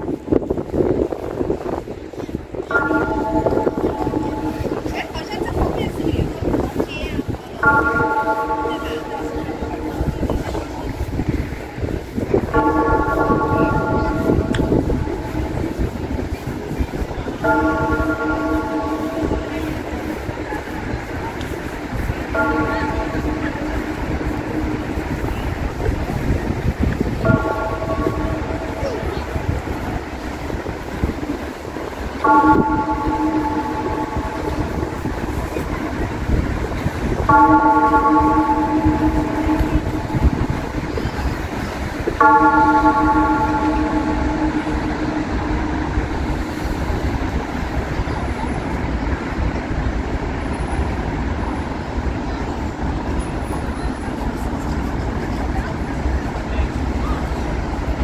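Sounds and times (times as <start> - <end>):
outdoor background noise: 0.0 - 58.0
horn blasts: 2.6 - 48.8.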